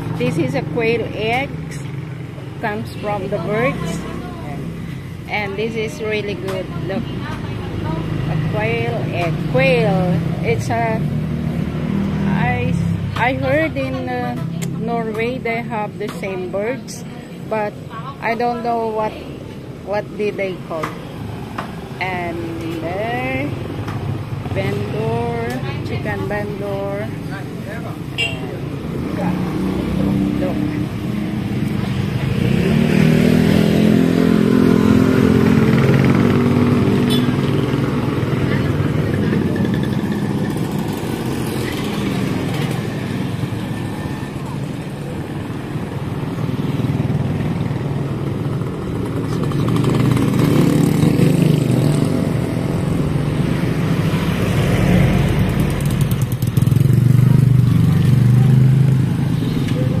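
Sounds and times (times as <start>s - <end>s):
motorcycles passing: 0.0s - 60.0s
street traffic: 0.0s - 60.0s.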